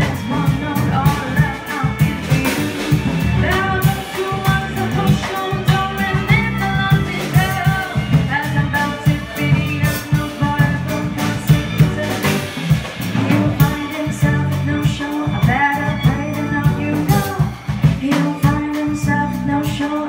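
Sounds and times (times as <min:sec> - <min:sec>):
bowed violin: 0:00.0 - 0:20.0
drum kit beat: 0:00.0 - 0:20.0
electric bass: 0:00.0 - 0:20.0
piano: 0:00.0 - 0:20.0
woman singing: 0:00.0 - 0:20.0.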